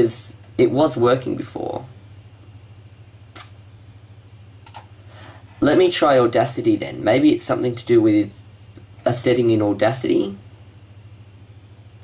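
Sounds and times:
steady low hum: 0:00.0 - 0:12.0
sharp click: 0:03.2 - 0:03.6, 0:04.6 - 0:04.9.

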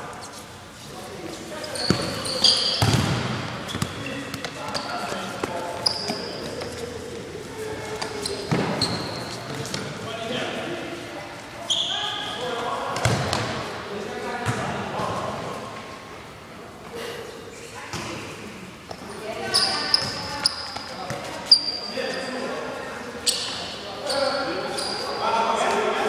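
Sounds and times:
sneakers squeaking on floor: 0:00.0 - 0:10.1, 0:11.6 - 0:13.7, 0:18.9 - 0:25.2
ball kicked and bouncing: 0:02.8 - 0:04.6.

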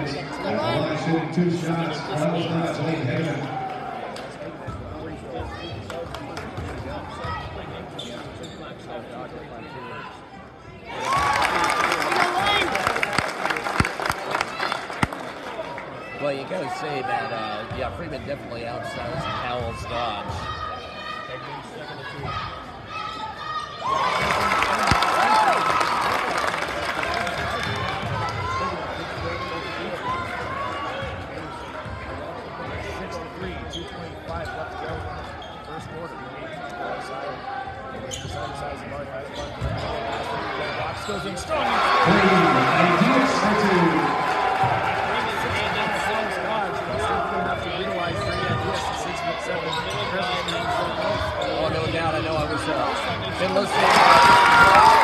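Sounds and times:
spectators yelling: 0:23.1 - 0:26.6, 0:41.5 - 0:46.8, 0:53.4 - 0:55.0.

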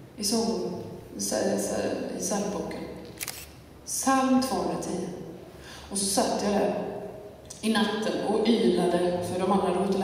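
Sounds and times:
woman speaking: 0:00.2 - 0:03.0, 0:03.9 - 0:10.0.

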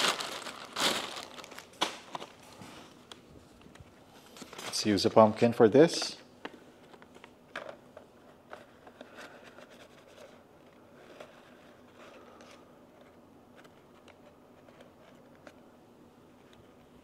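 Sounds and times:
paper coffee filter rustling: 0:00.0 - 0:02.8.

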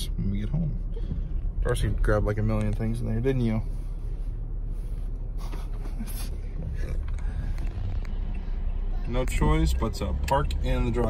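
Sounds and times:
engine and tyre rumble in cabin: 0:00.0 - 0:11.0.

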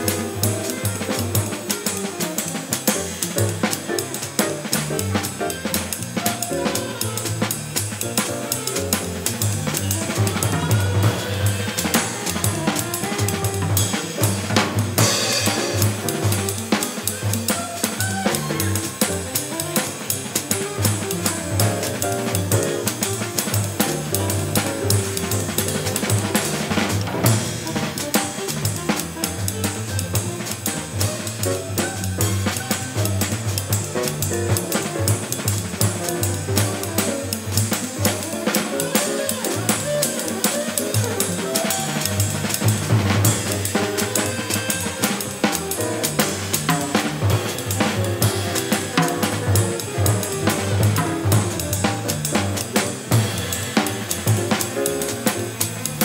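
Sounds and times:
bass: 0:00.0 - 0:56.0
jazz drum kit: 0:00.0 - 0:56.0
piano: 0:00.0 - 0:56.0.

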